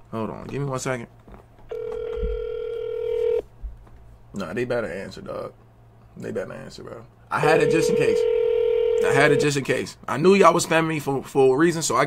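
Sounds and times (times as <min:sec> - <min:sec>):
phone ringback tone: 0:01.7 - 0:03.4, 0:07.4 - 0:09.6.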